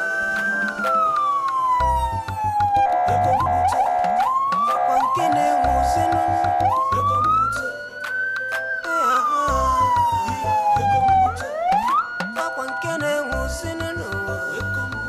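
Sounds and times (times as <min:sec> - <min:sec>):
music with heavy bass beat: 0:00.0 - 0:07.7, 0:09.5 - 0:15.0
siren wailing: 0:00.0 - 0:15.0.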